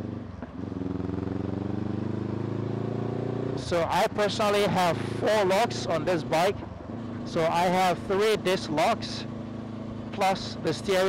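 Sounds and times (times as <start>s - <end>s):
motorcycle engine accelerating: 0.0s - 11.0s.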